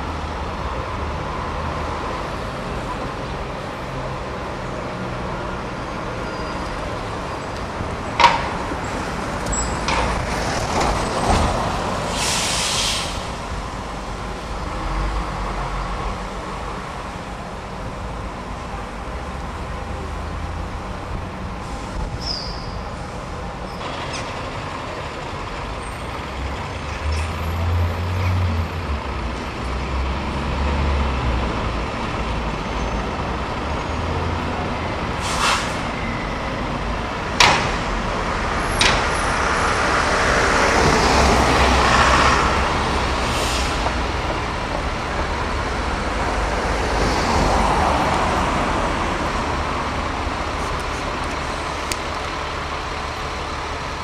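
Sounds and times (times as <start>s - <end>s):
diesel bus engines running: 0.0s - 54.0s
air brake hisses: 12.0s - 13.3s, 35.2s - 36.0s, 43.3s - 43.9s.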